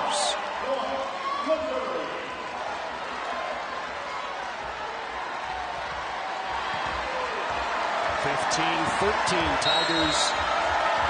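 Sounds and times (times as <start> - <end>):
crowd murmur in arena: 0.0 - 11.0.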